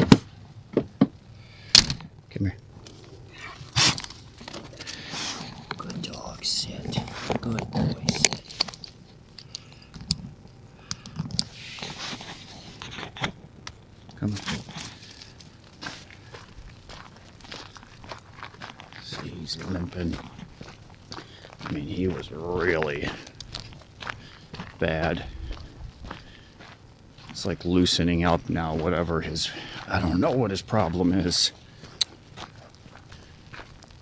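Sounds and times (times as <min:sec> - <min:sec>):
gear clicks and thunks: 0:00.0 - 0:02.1
footsteps on gravel: 0:02.7 - 0:09.9, 0:14.1 - 0:34.0.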